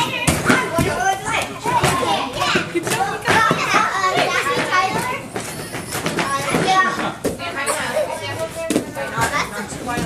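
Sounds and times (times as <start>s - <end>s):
children and adults talking: 0.0s - 10.0s.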